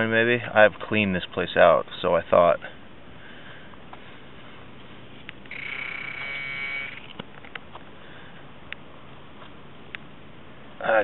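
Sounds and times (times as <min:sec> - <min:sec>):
metal detector buzzing tone: 0:05.4 - 0:07.1.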